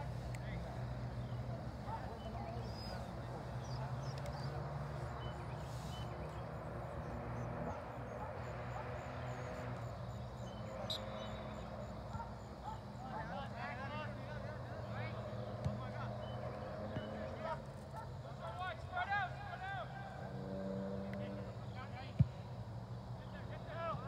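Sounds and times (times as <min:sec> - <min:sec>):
distant players shouting: 0:00.0 - 0:22.4.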